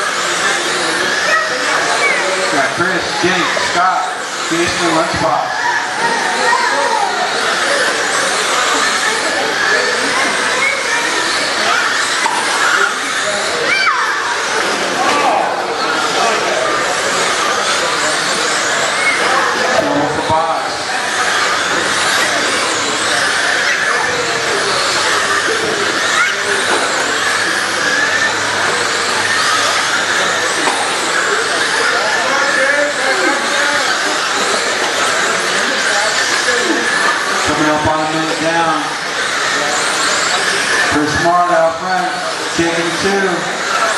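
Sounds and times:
electric motors whining: 0.0s - 43.9s
murmur of voices: 0.0s - 43.9s.

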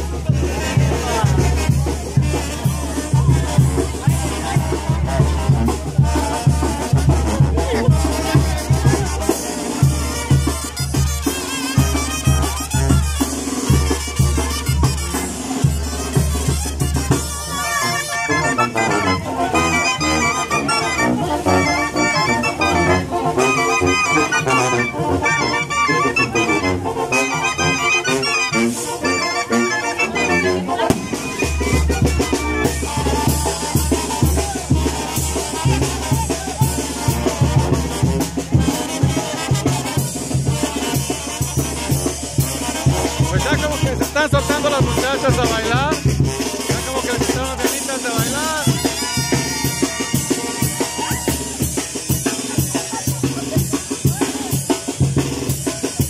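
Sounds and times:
brass band playing lively tune: 0.0s - 56.0s
clarinets playing melody: 10.6s - 36.3s.

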